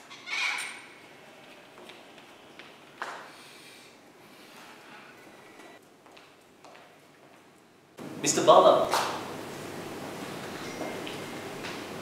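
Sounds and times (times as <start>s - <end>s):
door squeaky scrape: 0.1s - 0.9s.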